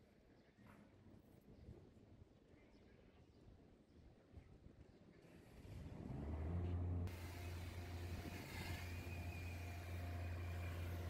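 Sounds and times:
distant traffic rumble: 5.4s - 11.0s.

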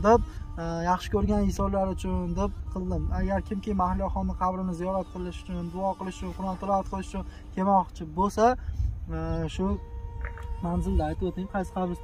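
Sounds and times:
thin steady hum: 0.0s - 12.0s
man's voice in drawn-out syllables: 9.1s - 12.0s.

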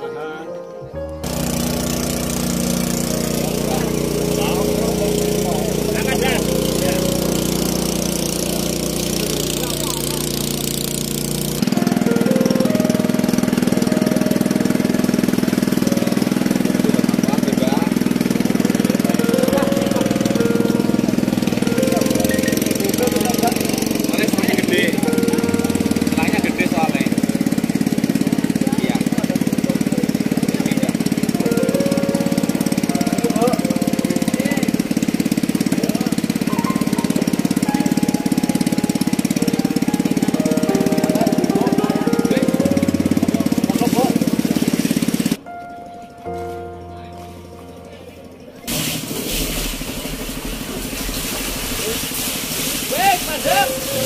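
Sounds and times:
pump engine running: 1.1s - 54.0s
people's voices: 3.2s - 10.6s, 52.9s - 54.0s.

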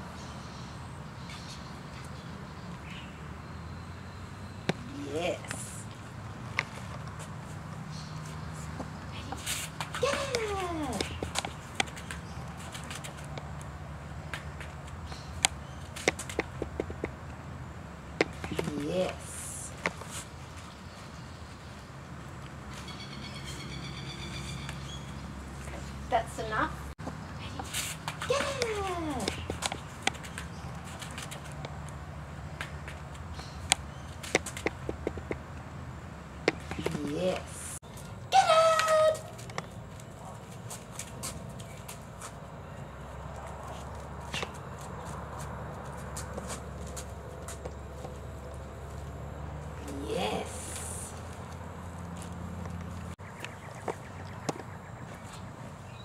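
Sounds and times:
voice falling in pitch: 38.3s - 39.3s.

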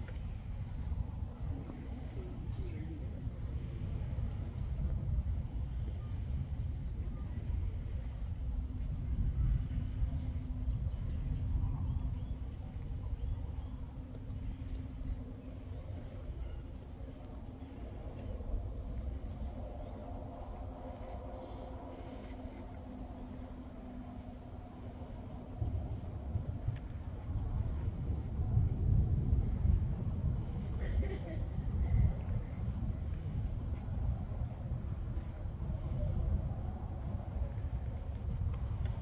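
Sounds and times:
insects chirring: 0.0s - 39.0s
low rumble: 17.7s - 39.0s.

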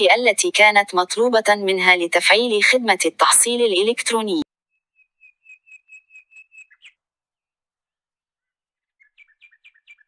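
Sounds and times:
high-pitched bird-like chirping: 5.0s - 7.0s.

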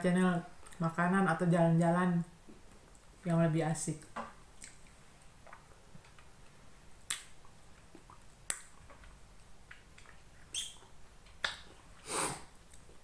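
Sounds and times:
wet mouth clicks while chewing: 4.6s - 13.0s.

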